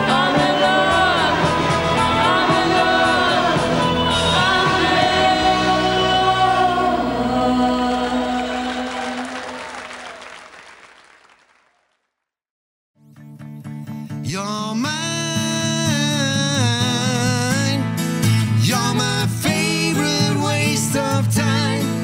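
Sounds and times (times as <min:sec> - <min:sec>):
pop song with singing and band: 0:00.0 - 0:09.2, 0:14.2 - 0:22.0.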